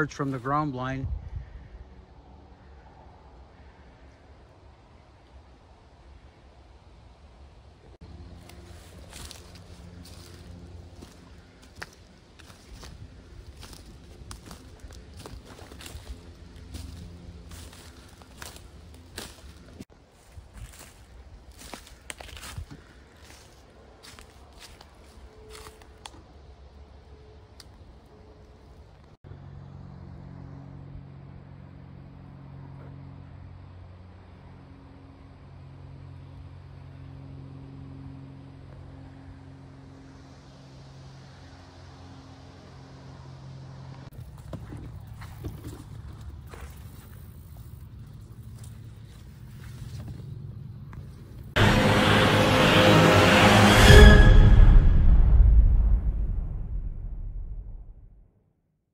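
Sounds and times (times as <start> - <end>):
low droning hum: 0.0 - 58.2
footsteps crunching through leaves: 8.0 - 26.1, 44.1 - 50.4.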